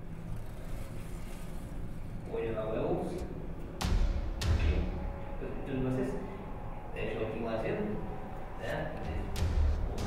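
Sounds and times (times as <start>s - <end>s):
room background rumble: 0.0s - 10.0s.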